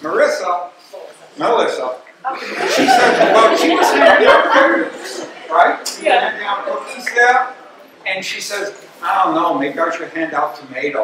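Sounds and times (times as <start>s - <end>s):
chuckling laughter: 2.4s - 5.4s.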